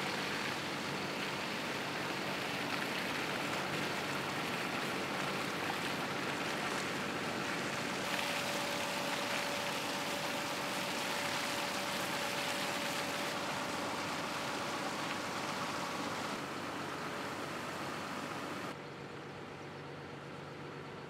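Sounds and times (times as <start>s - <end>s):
slurry splashing from hoses: 0.0s - 18.8s
faint steady whine: 0.0s - 19.1s.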